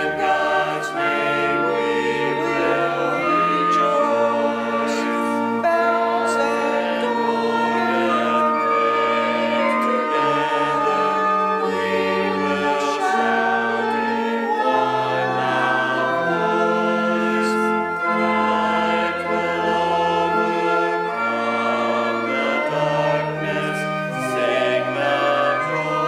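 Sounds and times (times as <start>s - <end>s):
group singing a hymn: 0.0s - 26.0s.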